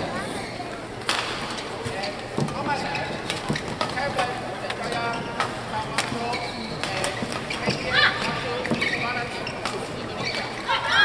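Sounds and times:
crowd voices: 0.0s - 11.0s
shoes squeaking on court: 1.5s - 11.0s.

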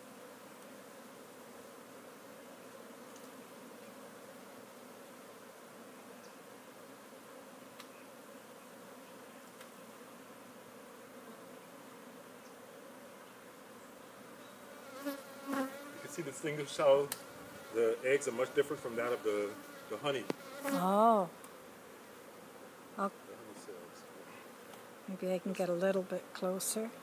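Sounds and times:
bees buzzing: 0.0s - 27.0s
faint ticks: 3.1s - 3.9s.

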